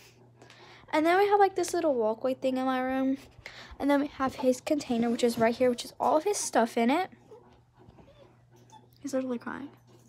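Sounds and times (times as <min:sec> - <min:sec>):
puppy whining: 0:07.1 - 0:09.2.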